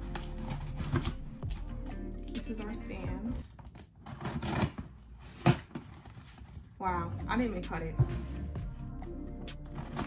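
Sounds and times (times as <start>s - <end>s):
scissors cutting plastic packaging: 0.0s - 1.8s, 3.4s - 6.5s, 9.7s - 10.0s.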